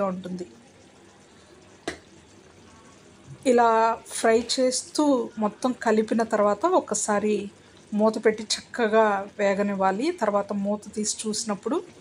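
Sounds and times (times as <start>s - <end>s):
food simmering in oil: 0.0s - 12.0s.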